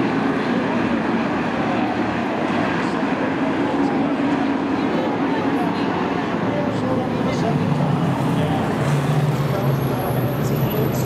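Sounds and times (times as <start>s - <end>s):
stock car engines droning: 0.0s - 11.0s.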